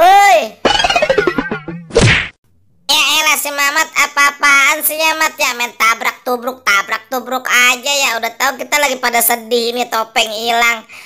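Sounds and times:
loud body collision whack: 0:01.3 - 0:02.4.

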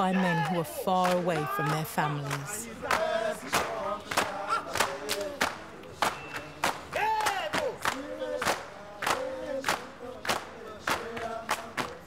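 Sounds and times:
men chanting and shouting: 0:00.0 - 0:12.0.

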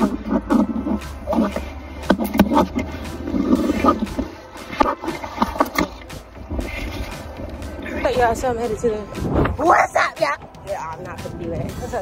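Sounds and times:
wind buffeting microphone: 0:05.1 - 0:12.0.

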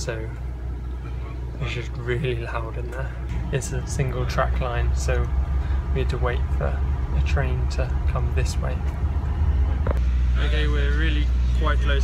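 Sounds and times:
train carriage rumble: 0:00.0 - 0:12.0.

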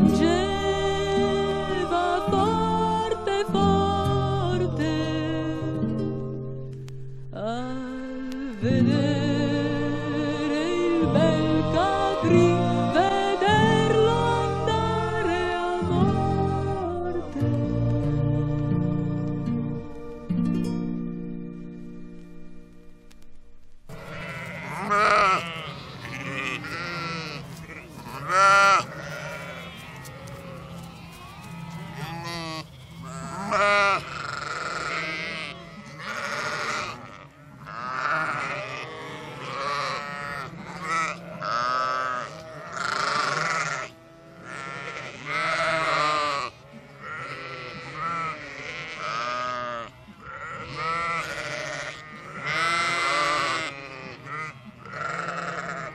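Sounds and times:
sheep bleating: 0:11.0 - 0:17.5, 0:23.9 - 0:55.9.

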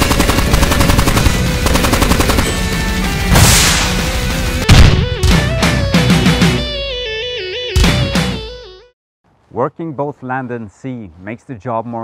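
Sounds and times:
machine gun firing: 0:00.0 - 0:02.8.

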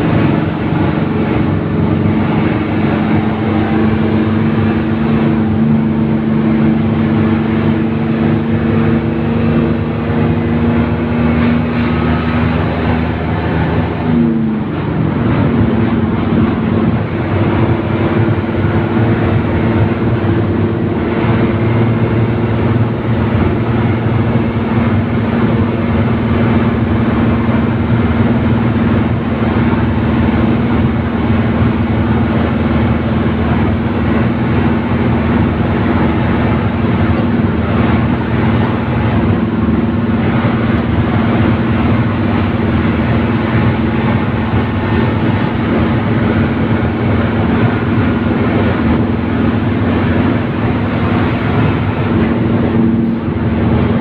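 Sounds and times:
bus engine running: 0:00.0 - 0:54.0
road and wind noise: 0:00.0 - 0:54.0.

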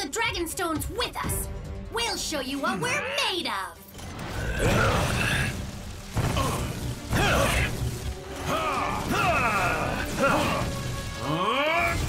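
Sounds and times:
electronic zaps: 0:04.0 - 0:12.0.

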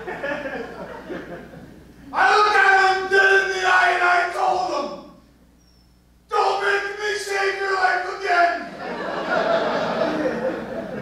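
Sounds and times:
man crying out: 0:02.1 - 0:05.0, 0:06.3 - 0:08.7.

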